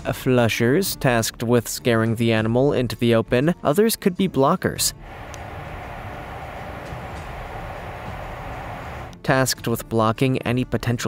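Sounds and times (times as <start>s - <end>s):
hiss: 5.0s - 9.2s
low rumble: 5.0s - 9.2s.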